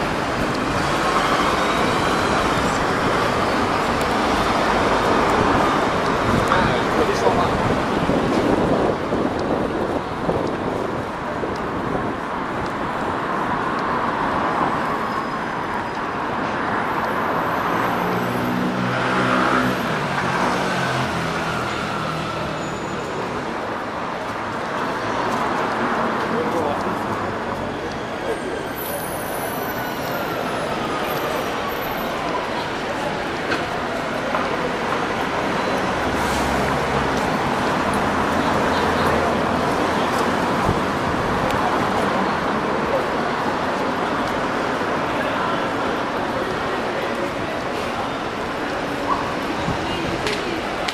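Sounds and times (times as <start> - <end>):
people's voices: 0.0 - 50.9
road traffic noise: 0.0 - 50.9.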